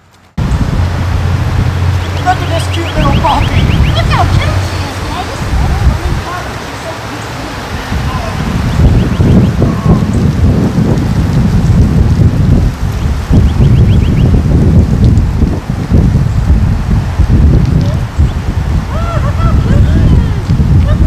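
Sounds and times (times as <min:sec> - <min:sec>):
wind buffeting microphone: 0:00.3 - 0:21.0.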